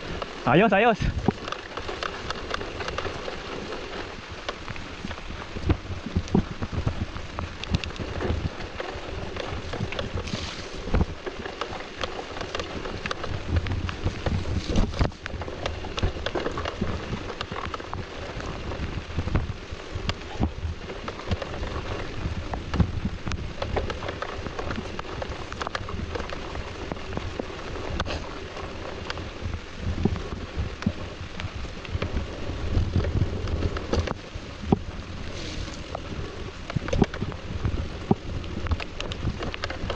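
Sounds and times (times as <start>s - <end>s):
bike rattling over roots: 0.0s - 39.9s
tyres rushing on wet dirt: 0.0s - 39.9s.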